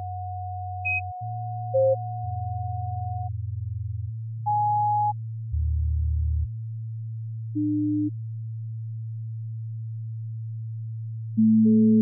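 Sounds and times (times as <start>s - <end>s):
sine-wave electronic music: 0.0s - 6.6s, 7.4s - 8.3s, 11.3s - 12.0s.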